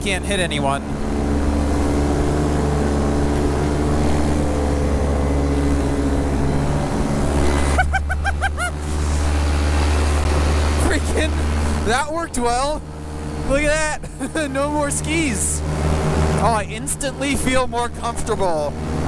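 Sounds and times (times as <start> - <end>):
paramotor engine running: 0.0 - 19.0.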